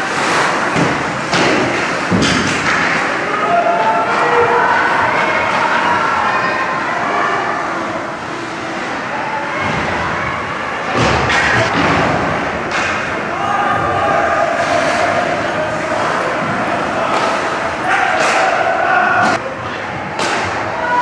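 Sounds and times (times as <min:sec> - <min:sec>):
spectators' voices and calls: 0:00.0 - 0:21.0
sharp knocks from hockey play: 0:00.7 - 0:03.1.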